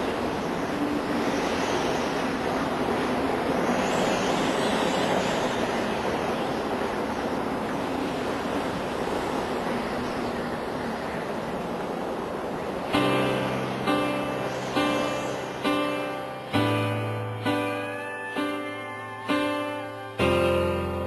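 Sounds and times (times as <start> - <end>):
wind at sea: 0.0 - 13.1.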